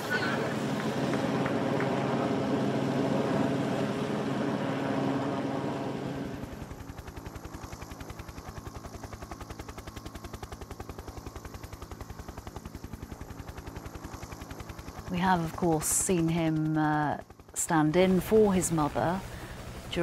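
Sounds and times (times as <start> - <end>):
helicopter rotor chopping: 0.0 - 20.0.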